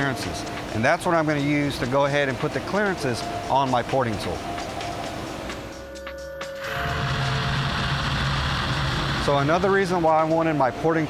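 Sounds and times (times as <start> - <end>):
background music: 0.0 - 11.0
low machine hum: 0.0 - 11.0.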